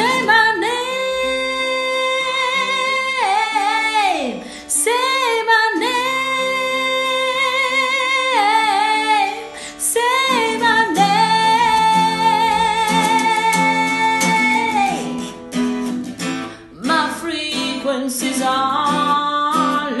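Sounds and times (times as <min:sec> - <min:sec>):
woman singing soft ballad: 0:00.0 - 0:15.4, 0:16.8 - 0:20.0
fingerpicked acoustic guitar: 0:00.0 - 0:20.0.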